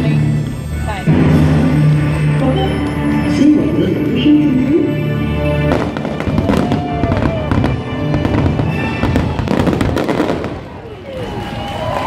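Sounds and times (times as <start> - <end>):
music soundtrack: 0.0 - 10.8
fireworks bursting and crackling: 5.4 - 12.0.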